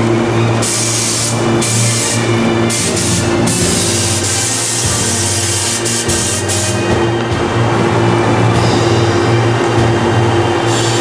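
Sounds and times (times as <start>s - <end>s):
steady low hum: 0.0s - 11.0s
bursts of hiss: 0.6s - 6.8s.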